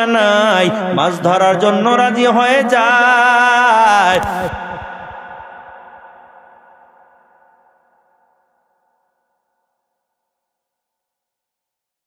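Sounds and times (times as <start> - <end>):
echoing preacher's voice: 0.0 - 6.2.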